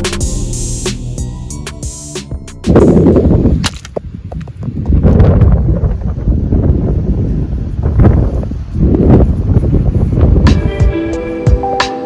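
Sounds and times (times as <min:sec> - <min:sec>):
wind buffeting microphone: 0:02.7 - 0:11.0.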